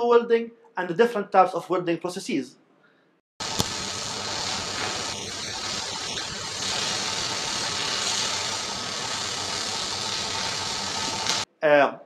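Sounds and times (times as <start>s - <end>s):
arc welding crackling hiss: 3.4s - 11.5s.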